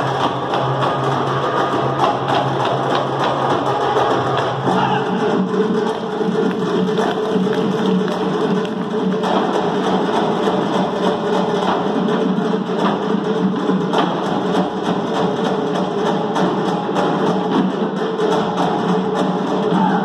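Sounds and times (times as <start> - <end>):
fast hand drumming: 0.0 - 20.0
folk dance music: 0.0 - 20.0.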